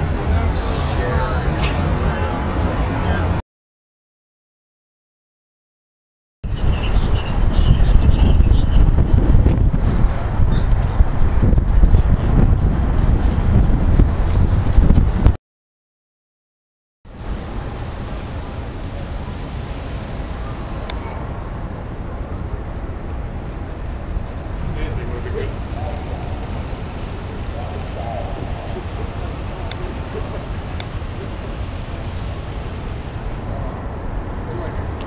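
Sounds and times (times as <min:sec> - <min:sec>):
wind rumbling on microphone: 0:00.0 - 0:03.4, 0:06.4 - 0:15.4, 0:17.1 - 0:35.0
faint distant voices: 0:24.6 - 0:35.0.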